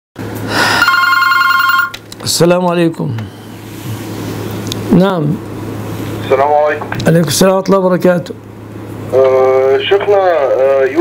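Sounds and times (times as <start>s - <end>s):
telephone ringing two-tone trill: 0.8s - 2.0s.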